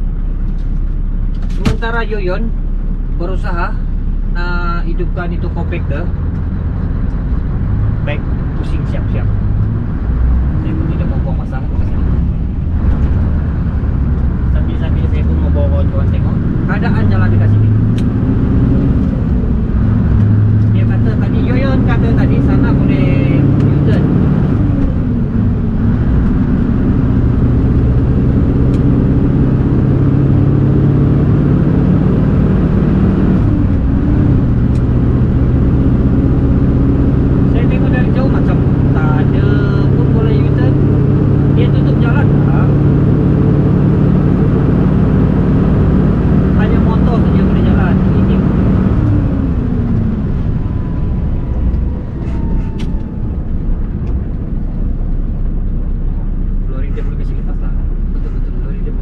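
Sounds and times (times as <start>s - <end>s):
truck diesel engine pulling: 0.0s - 59.0s.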